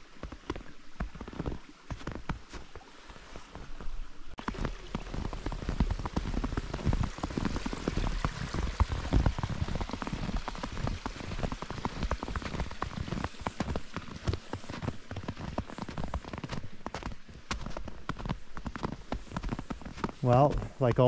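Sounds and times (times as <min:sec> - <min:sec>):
boots crunching through snow: 0:00.0 - 0:21.0.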